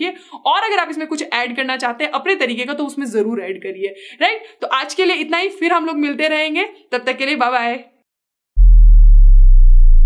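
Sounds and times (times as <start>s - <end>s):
deep electronic bass drop: 8.6s - 10.0s.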